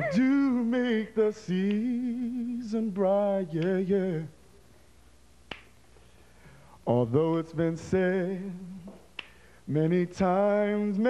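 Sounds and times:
finger snap: 1.5 - 2.1, 3.5 - 3.8, 5.4 - 5.8, 8.8 - 9.4.

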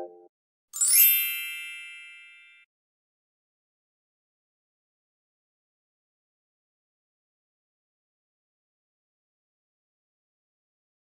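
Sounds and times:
high bright bell ding: 0.8 - 2.6.

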